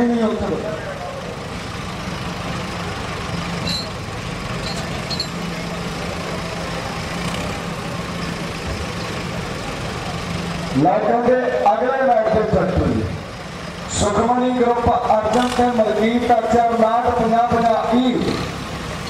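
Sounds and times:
diesel tractor engines running: 0.0 - 19.0.

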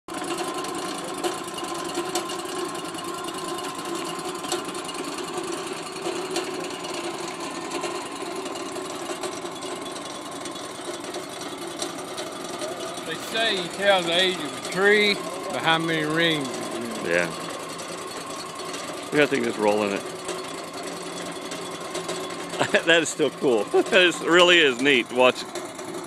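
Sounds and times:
sawmill sawing a log: 0.3 - 26.0.

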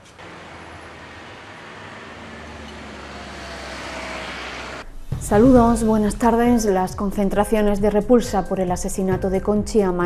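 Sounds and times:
vehicle engine approaching: 0.0 - 6.4.

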